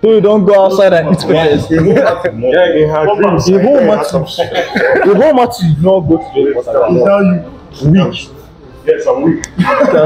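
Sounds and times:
men chuckling: 4.3s - 5.4s, 9.6s - 10.0s.

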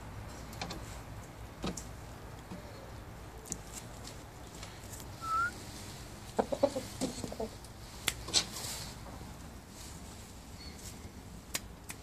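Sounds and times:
rooster rising squeak: 5.2s - 5.6s
rooster low clucks: 6.3s - 7.6s.

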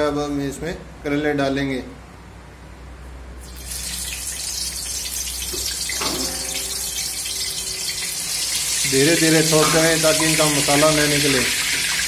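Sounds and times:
hot oil sizzling: 3.4s - 12.0s.

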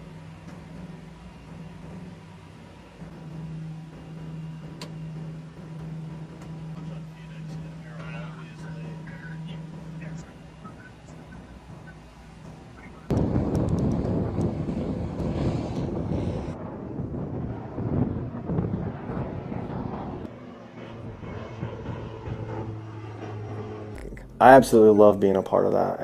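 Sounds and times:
turboprop engine and propeller: 0.0s - 26.0s.

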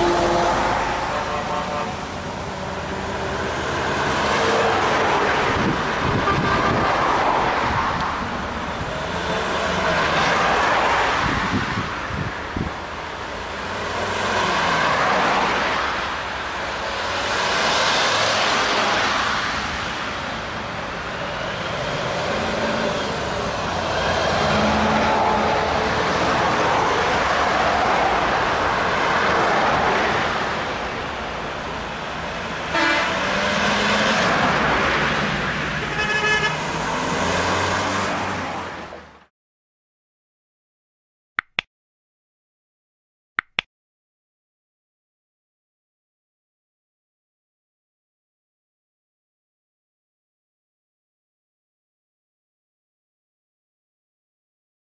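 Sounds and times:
horns tooting: 0.0s - 2.2s, 32.7s - 33.4s, 35.8s - 36.7s
trucks driving past: 0.0s - 39.3s.

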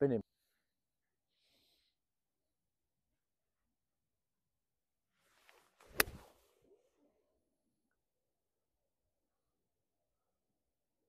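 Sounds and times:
golf club striking ball: 5.9s - 6.2s.

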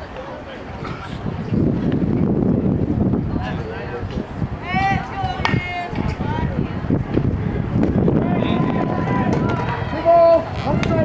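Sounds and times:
loud held shout: 4.6s - 6.6s, 8.2s - 11.0s.

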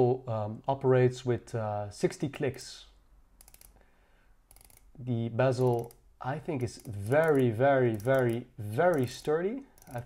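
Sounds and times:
watch bezel ratcheting clicks: 3.4s - 3.8s, 4.5s - 5.0s, 5.6s - 6.0s, 6.6s - 10.0s.

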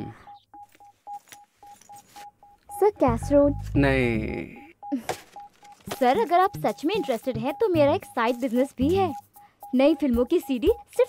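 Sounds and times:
short electronic beeps: 0.0s - 11.0s.

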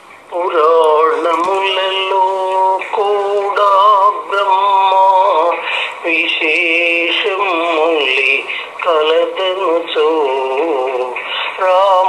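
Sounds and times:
person singing devotional song: 0.3s - 12.0s.

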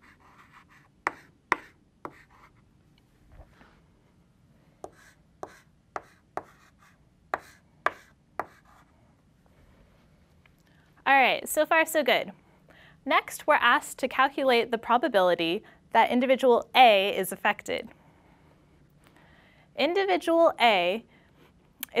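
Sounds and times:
chalk scratching: 0.0s - 2.6s, 4.8s - 8.9s
chalk tapping on blackboard: 0.1s - 2.5s, 4.8s - 8.8s.

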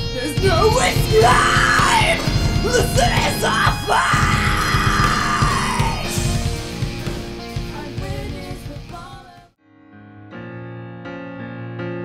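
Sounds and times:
symphonic metal song: 0.0s - 9.4s
rapid drum beats: 0.0s - 9.5s.

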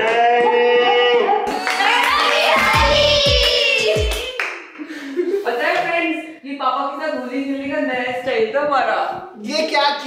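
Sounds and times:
people clapping: 1.4s - 4.9s
backing song: 1.5s - 4.4s.

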